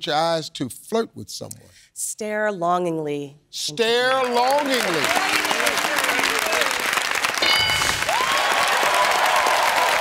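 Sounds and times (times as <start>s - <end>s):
audience applauding: 4.1s - 10.0s
short bright chime: 7.4s - 8.1s.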